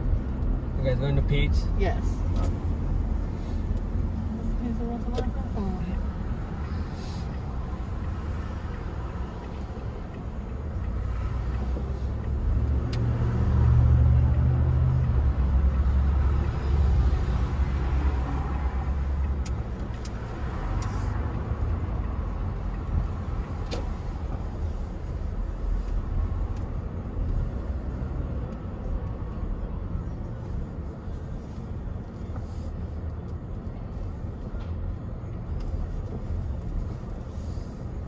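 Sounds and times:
car interior road rumble: 0.0 - 38.0.

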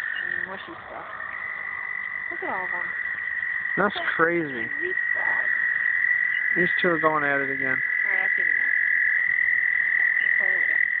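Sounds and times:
chorus of frogs calling: 0.0 - 11.0.

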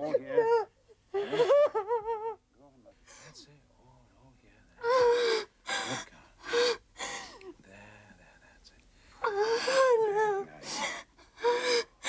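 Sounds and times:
woman sobbing: 0.0 - 2.4, 4.8 - 7.5, 9.2 - 12.0.

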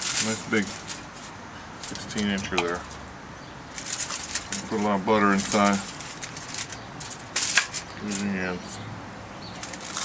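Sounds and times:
aluminium foil crinkling: 0.0 - 3.1, 3.7 - 8.4, 9.6 - 10.0.

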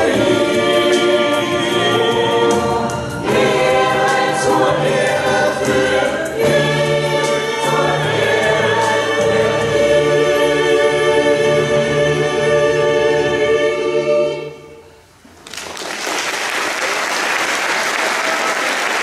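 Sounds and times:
mixed choir singing in harmony: 0.0 - 15.0
choir breaths: 13.0 - 15.2.

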